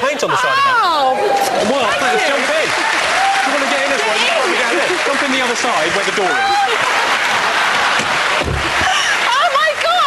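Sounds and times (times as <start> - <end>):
audience applauding and cheering: 0.5 - 10.0.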